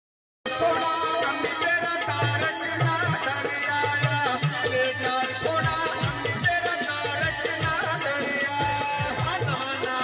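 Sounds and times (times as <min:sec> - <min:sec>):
harmonium melody: 0:00.4 - 0:10.0
tabla drum rhythm: 0:00.5 - 0:10.0.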